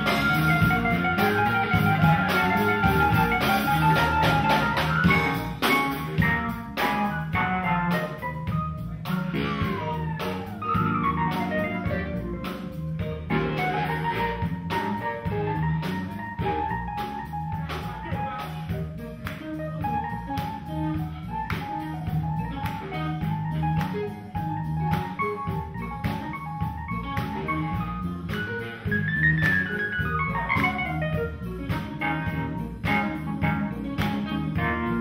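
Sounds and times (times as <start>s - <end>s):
baritone saxophone: 0.0s - 35.0s
drum kit with cymbals: 0.0s - 35.0s
electric bass: 0.0s - 35.0s
electric guitar: 0.0s - 35.0s
funk band playing: 0.0s - 35.0s.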